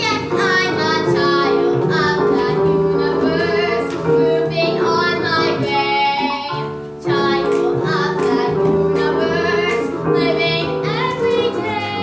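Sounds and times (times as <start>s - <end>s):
girl singing: 0.0s - 12.0s
instrumental accompaniment: 0.0s - 12.0s.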